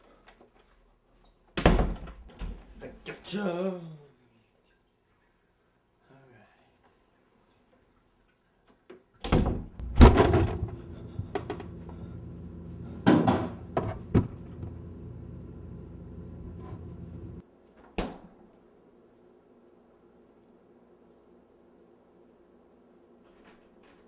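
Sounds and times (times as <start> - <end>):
refrigerator door opening and shutting: 9.2 - 11.8
thud: 9.8 - 10.7
refrigerator hum: 9.8 - 17.4.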